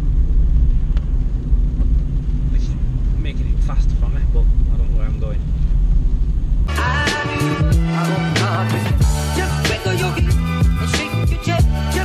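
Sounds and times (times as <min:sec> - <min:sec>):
car cabin road rumble: 0:00.0 - 0:06.7
music with a beat: 0:06.7 - 0:12.0.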